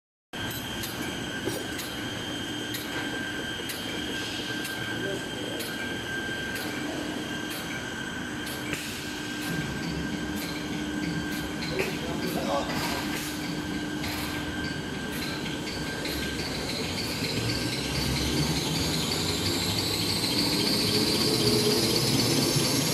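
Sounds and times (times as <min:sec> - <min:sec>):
machine whirring with whine: 0:00.4 - 0:22.9.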